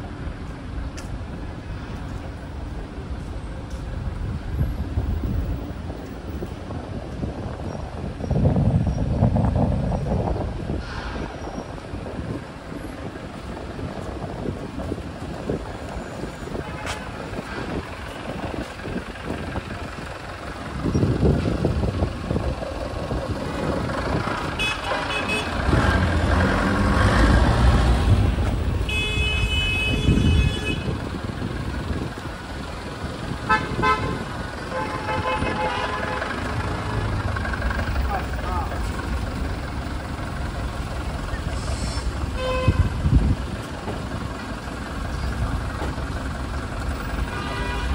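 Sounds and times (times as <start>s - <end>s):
traffic engines and tyres: 0.0s - 47.9s
vehicle engine rumble passing: 7.6s - 29.0s, 29.8s - 47.9s
car horns honking: 24.4s - 26.1s, 28.3s - 31.0s, 33.4s - 36.8s, 42.3s - 43.0s, 47.2s - 47.9s.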